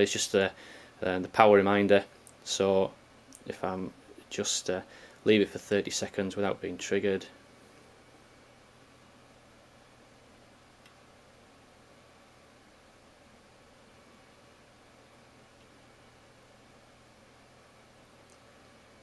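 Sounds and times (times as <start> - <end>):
faint hiss: 0.0 - 19.0
faint clicks: 10.8 - 11.0, 18.2 - 18.5.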